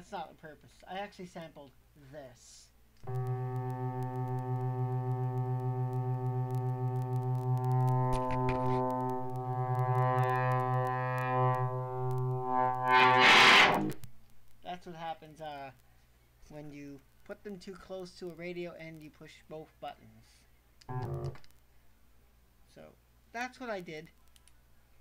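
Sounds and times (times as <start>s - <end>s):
walkie-talkie feedback buzzing: 3.0s - 14.0s, 20.9s - 21.5s
burst of static: 3.0s - 14.6s.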